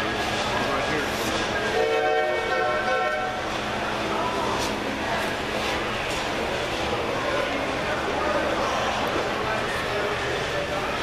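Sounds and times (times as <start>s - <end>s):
crowd chatter: 0.0s - 11.0s
model train horn chord: 1.7s - 3.5s.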